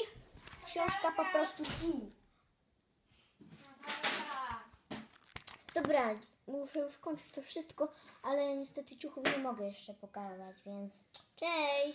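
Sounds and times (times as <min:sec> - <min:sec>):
girl's wordless utterance: 0:00.0 - 0:02.2.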